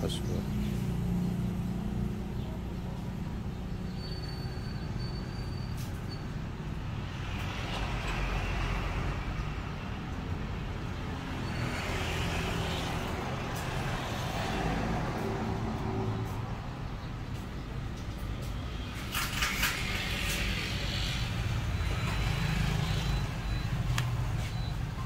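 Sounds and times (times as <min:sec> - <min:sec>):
traffic rumble: 0:00.0 - 0:25.0
vehicles passing: 0:00.0 - 0:25.0.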